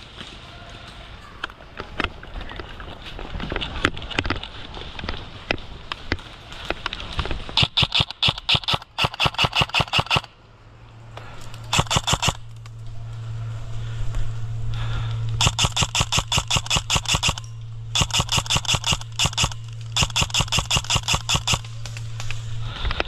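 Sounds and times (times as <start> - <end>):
airsoft guns firing: 7.6 - 10.4, 11.3 - 12.5, 15.4 - 22.9.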